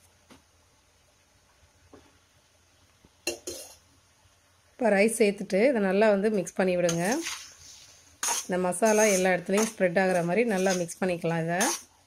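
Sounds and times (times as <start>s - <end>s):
metal ladle scraping iron pot: 6.9s - 11.9s.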